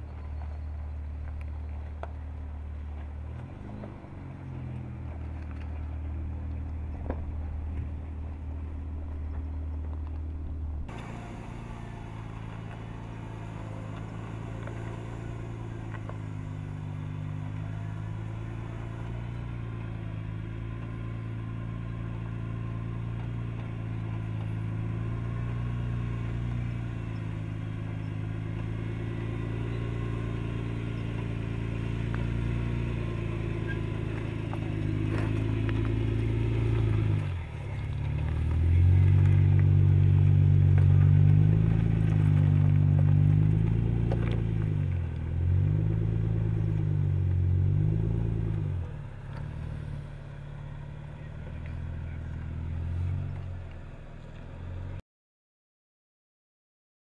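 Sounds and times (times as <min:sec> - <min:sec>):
engine revving over rock: 0:10.9 - 0:53.6.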